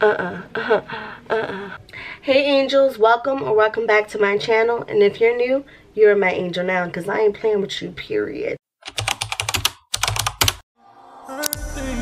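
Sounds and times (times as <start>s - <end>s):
keyboard typing clicks: 8.9s - 10.6s
music: 10.8s - 12.0s.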